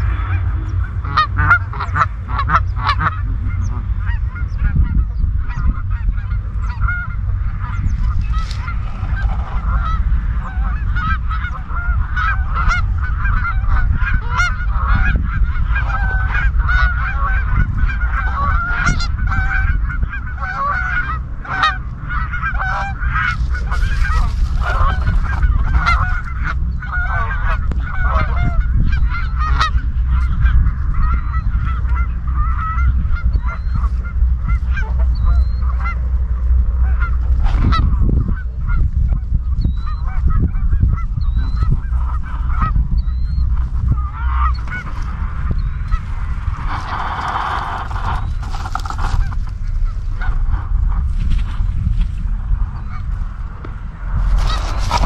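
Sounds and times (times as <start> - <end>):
geese honking: 0.0 - 55.0
steady low rumble: 0.0 - 55.0.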